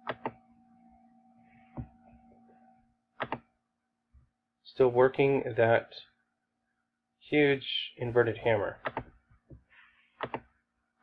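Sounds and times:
faint steady hum: 0.0s - 11.0s
computer mouse clicks: 3.2s - 3.5s, 10.2s - 10.5s.

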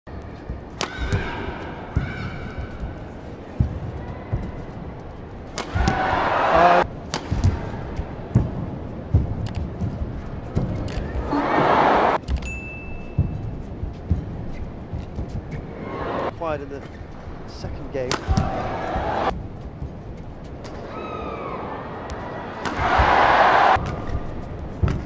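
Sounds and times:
rackets striking shuttlecocks: 0.2s - 3.8s, 5.4s - 11.3s, 18.0s - 19.3s, 22.1s - 25.0s
crowd cheering: 5.7s - 6.9s, 11.2s - 12.2s, 15.8s - 16.3s, 18.3s - 19.3s, 20.8s - 23.8s.

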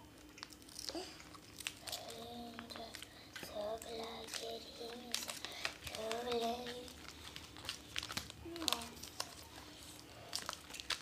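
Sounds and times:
foil wrapper crinkling: 0.0s - 11.0s.

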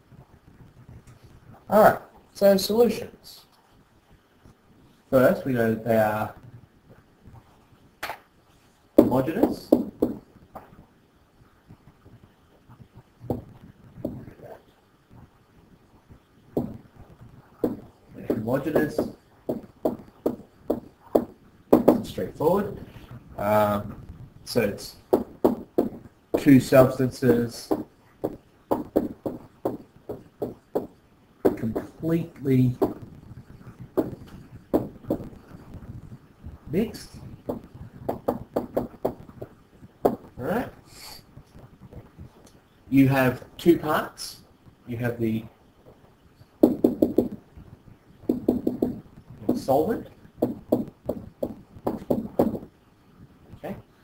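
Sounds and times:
stylus tapping on screen: 9.0s - 10.7s, 13.2s - 14.3s, 16.5s - 16.9s, 17.5s - 22.2s, 25.1s - 32.1s, 32.7s - 35.9s, 37.4s - 40.4s, 46.6s - 47.4s, 48.2s - 52.7s.

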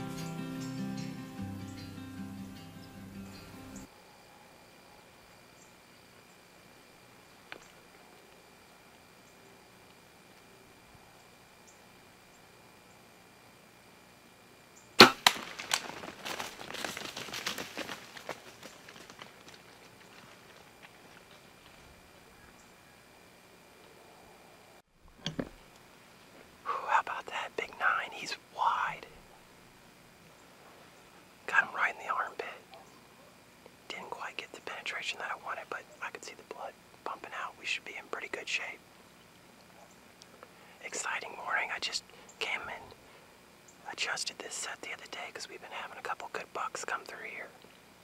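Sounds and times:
bow shot: 15.0s - 15.6s
deer crashing through brush: 15.0s - 20.6s
man whispering: 26.6s - 29.2s, 31.5s - 32.7s, 33.9s - 38.8s, 40.8s - 43.0s, 43.8s - 47.6s.

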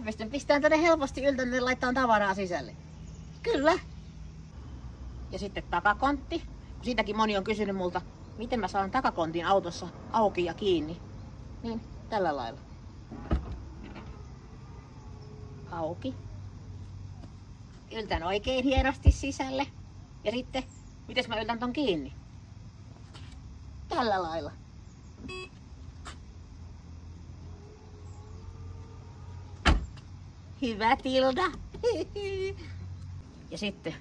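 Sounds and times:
trunk latch clunk: 13.1s - 14.2s.

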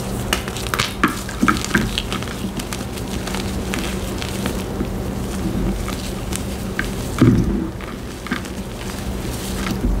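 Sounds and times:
chalk crunching and crackling: 0.2s - 10.0s.

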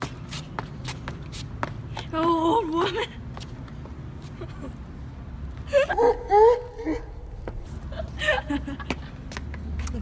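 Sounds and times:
sneakers scuffing on brick: 0.0s - 2.3s.

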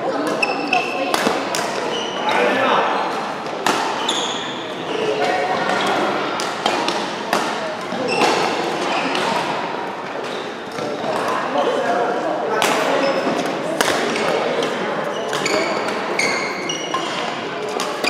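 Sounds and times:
shoes squeaking on court: 0.1s - 6.2s, 7.9s - 9.4s, 15.0s - 18.0s
rackets hitting shuttlecock: 0.2s - 1.9s, 3.1s - 4.2s, 5.2s - 11.4s, 12.6s - 18.0s.

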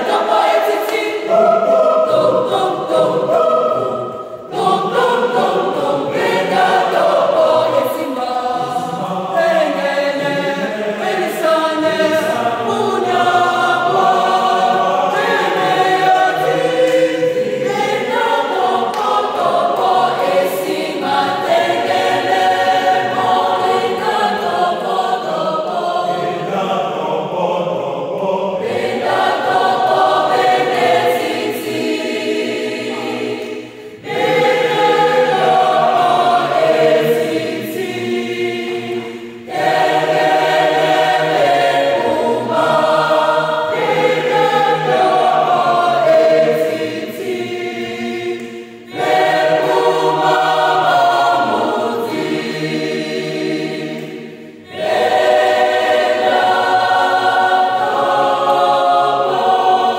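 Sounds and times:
mixed choir singing a cappella: 0.0s - 59.9s.

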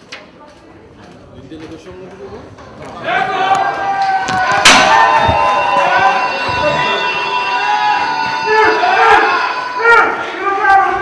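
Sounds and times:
crowd shouting: 3.0s - 11.0s.

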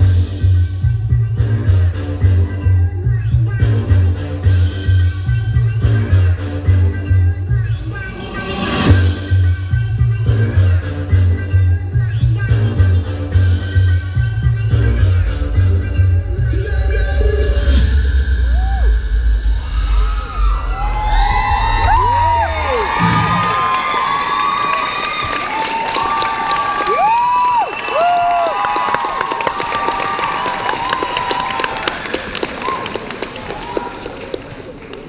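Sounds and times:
audience cheering: 18.3s - 35.0s
audience clapping: 21.8s - 35.0s.

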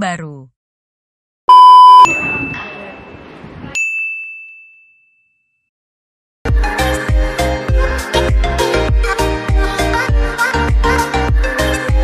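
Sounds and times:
bell-like chime ding: 2.0s - 3.2s, 3.8s - 5.7s.

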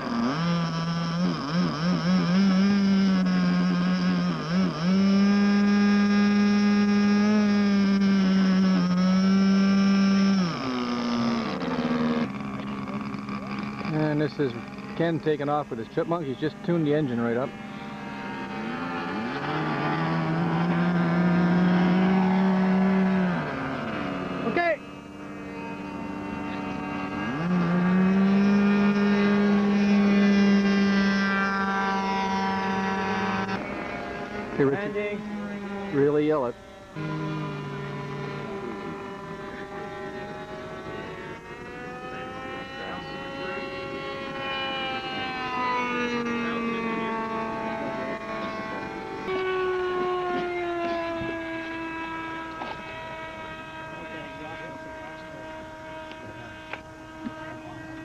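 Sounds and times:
model airplane engines revving: 0.0s - 58.0s.

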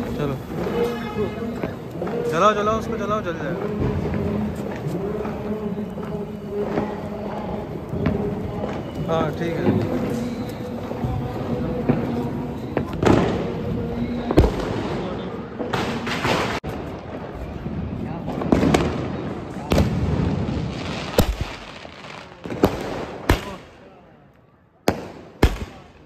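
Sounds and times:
fireworks bangs: 0.0s - 24.2s, 24.8s - 26.0s
fireworks crackle: 0.0s - 26.0s.

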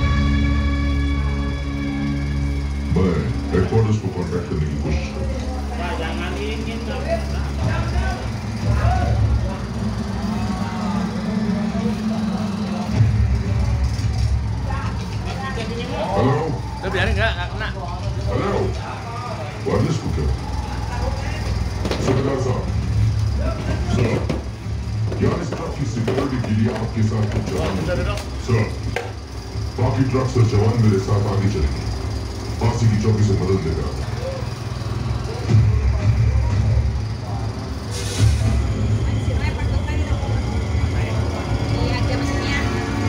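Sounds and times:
background music: 0.0s - 27.6s, 28.2s - 43.0s
indistinct dialogue over loudspeakers: 0.0s - 43.0s
steady low hum: 0.0s - 43.0s.

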